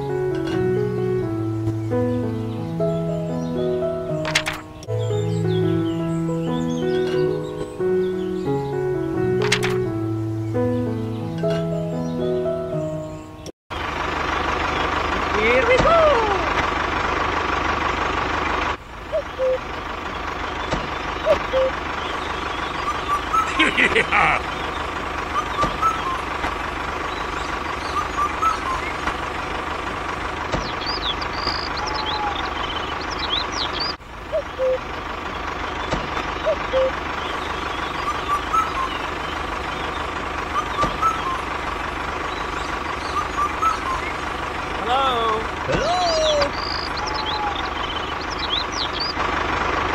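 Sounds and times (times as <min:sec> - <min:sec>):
tractor engine idling: 0:00.0 - 0:49.9.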